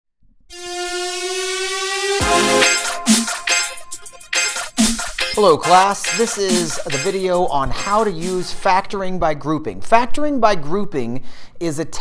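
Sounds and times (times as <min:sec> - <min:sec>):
toy whistle long note: 0:00.5 - 0:03.7.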